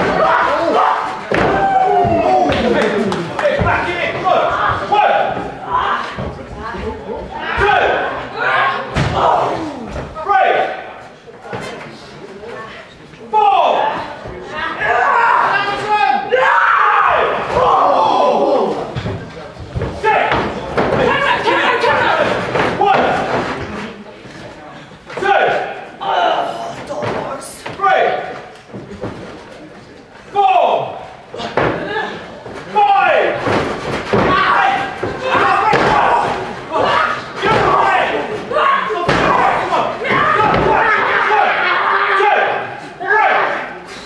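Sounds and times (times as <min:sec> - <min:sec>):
people shouting and yelling: 0:00.0 - 0:11.8, 0:13.2 - 0:24.1, 0:25.0 - 0:28.8, 0:30.2 - 0:44.0.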